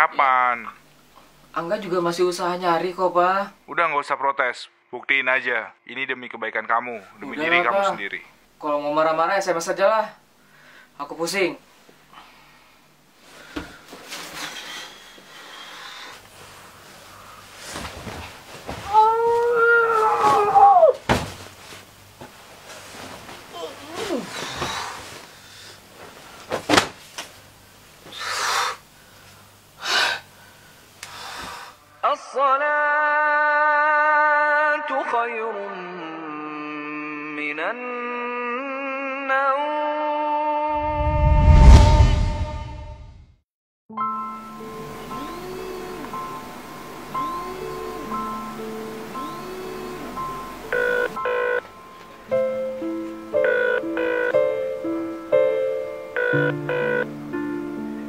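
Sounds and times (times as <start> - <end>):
piano background music: 43.9 - 58.0
mobile phone ringtone: 47.2 - 57.6.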